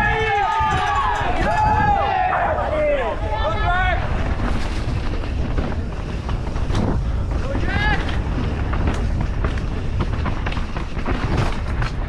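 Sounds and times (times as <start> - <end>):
spectators cheering: 0.0 - 4.0
bike tyres on dirt trail: 0.0 - 12.0
wind buffeting microphone: 0.0 - 12.0.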